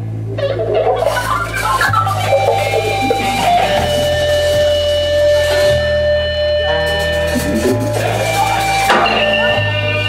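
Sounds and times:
electric guitar: 0.0 - 10.0
held bass notes: 0.0 - 10.0
jazz-rock band playing: 0.3 - 10.0
saxophone: 1.0 - 10.0.

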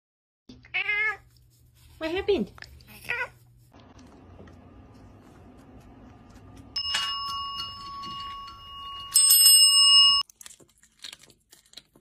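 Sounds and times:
small bell ringing: 6.8 - 10.2
cat chewing: 10.2 - 12.0.

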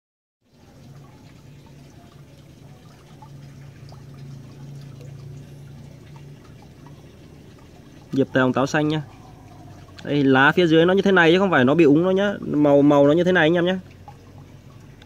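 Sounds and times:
low steady hum: 0.4 - 15.0
small water splashes: 0.4 - 15.0
water trickling and dripping: 0.4 - 15.0.

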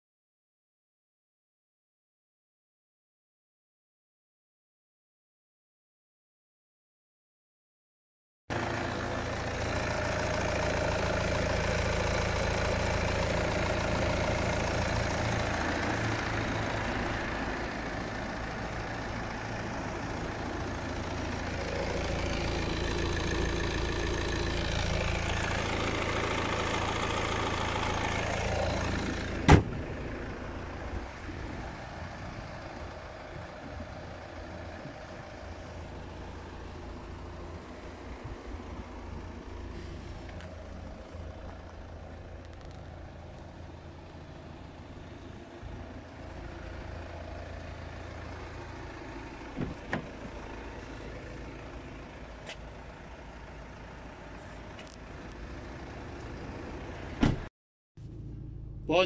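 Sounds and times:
diesel engine idling: 8.5 - 59.0
car bonnet shutting bang: 29.4 - 29.8, 57.2 - 57.5.

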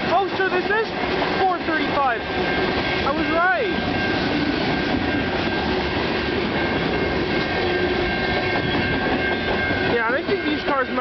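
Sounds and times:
train wheels rumbling on rail: 0.0 - 11.0.

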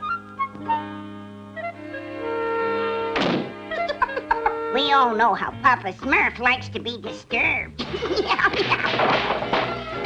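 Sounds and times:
background music held notes: 0.0 - 10.0
cartoon wooden door thunk: 3.2 - 3.6, 8.5 - 10.0.

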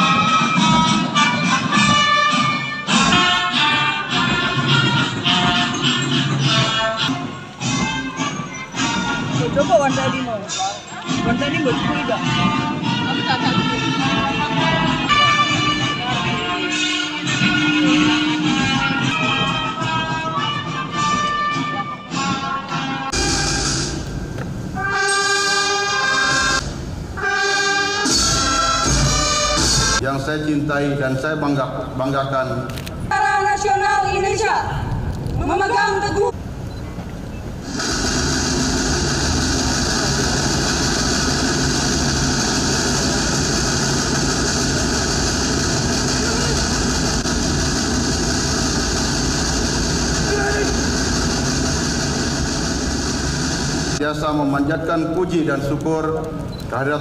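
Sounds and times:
brass band holding chords: 0.0 - 30.0
engine-like roar with low hum: 37.6 - 54.0.

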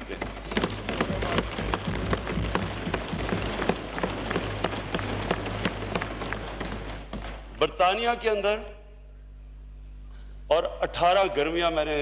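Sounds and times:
people thumping desks and clapping: 0.0 - 7.6.

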